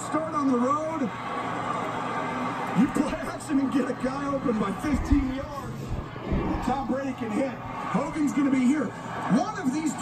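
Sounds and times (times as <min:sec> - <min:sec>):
commentator's voice on television: 0:00.0 - 0:01.2, 0:02.7 - 0:10.0
crowd background noise: 0:00.0 - 0:10.0.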